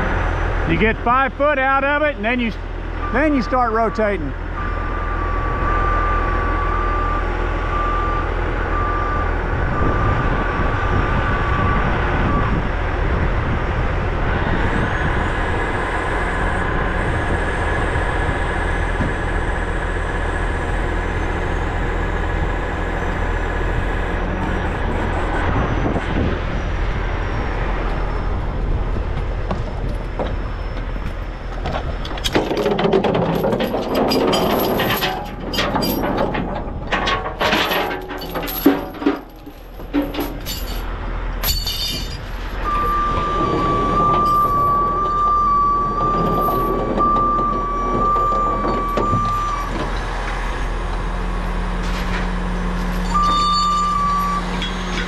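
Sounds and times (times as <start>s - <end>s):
diesel truck engine running: 0.0s - 55.0s
backup alarm beeping: 3.0s - 10.4s, 42.6s - 49.8s, 53.1s - 54.6s
metallic rattling and clanking: 31.6s - 50.4s.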